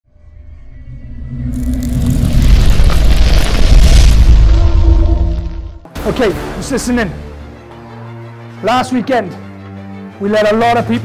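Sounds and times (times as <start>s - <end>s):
low rumbling swell: 0.1s - 5.9s.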